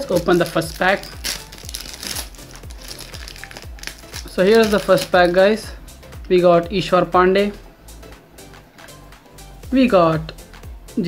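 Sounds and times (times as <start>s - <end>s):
foil wrapper crinkling and tearing: 0.0s - 5.3s
background music with low beat: 0.0s - 11.0s.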